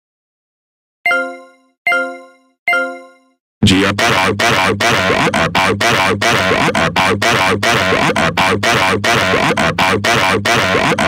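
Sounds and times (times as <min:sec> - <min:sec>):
computer error chime: 0:01.1 - 0:03.4
man shouting: 0:03.6 - 0:11.0.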